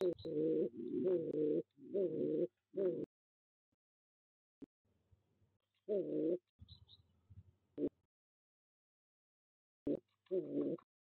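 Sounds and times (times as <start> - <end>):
pigeon cooing: 0.0 - 3.1, 5.9 - 6.4, 9.9 - 10.9.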